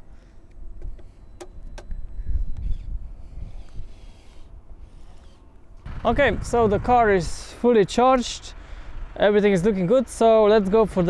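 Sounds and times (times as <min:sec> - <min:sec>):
wind on microphone: 0:01.9 - 0:05.2, 0:05.8 - 0:07.4.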